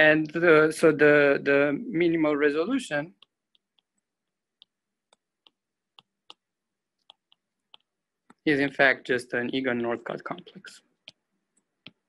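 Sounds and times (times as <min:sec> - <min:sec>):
stylus tapping on glass screen: 0:03.2 - 0:08.4.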